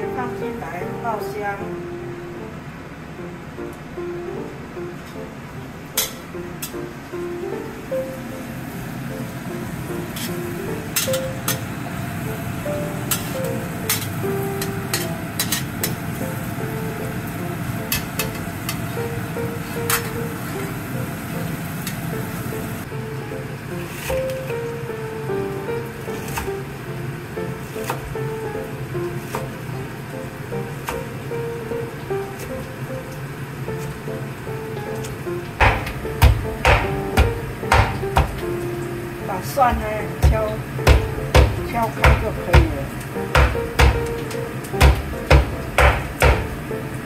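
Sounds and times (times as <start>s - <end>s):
background music: 0.0s - 47.0s
meat tenderizer knocking on board: 35.6s - 38.5s, 39.7s - 42.8s, 43.4s - 46.6s.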